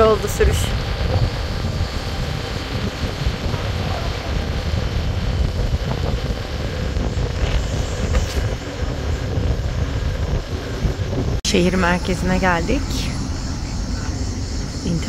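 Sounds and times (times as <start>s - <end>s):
tyre and road noise: 0.0s - 15.0s
wind buffeting microphone: 0.0s - 15.0s.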